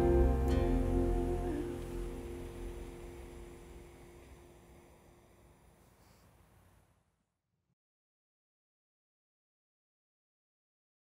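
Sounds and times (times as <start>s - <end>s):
acoustic guitar chord ringing: 0.0s - 5.0s.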